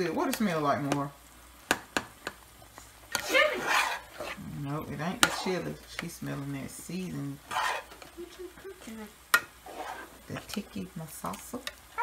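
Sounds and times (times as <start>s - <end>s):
faint sizzle: 0.0s - 12.0s
spoon stirring in sauce: 1.7s - 8.6s, 9.3s - 12.0s.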